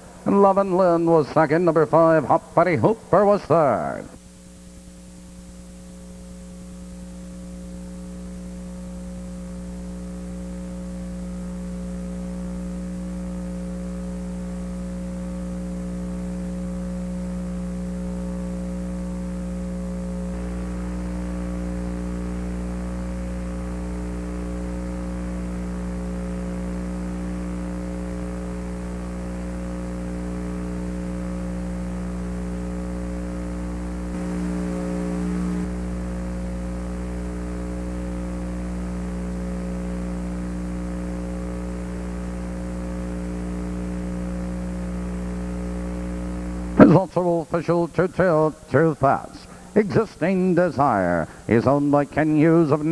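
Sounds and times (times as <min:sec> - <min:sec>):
electrical mains hum: 0:00.0 - 0:52.9.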